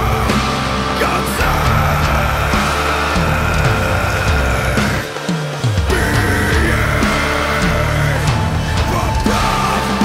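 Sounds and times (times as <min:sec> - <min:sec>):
heavy metal band with distorted guitar: 0:00.0 - 0:10.0.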